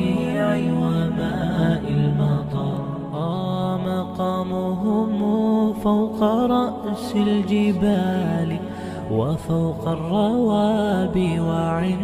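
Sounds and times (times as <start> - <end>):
person singing ornamented melody: 0.0 - 12.0.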